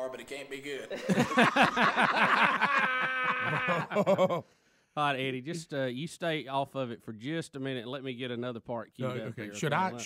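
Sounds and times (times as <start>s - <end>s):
men laughing: 0.9s - 4.5s.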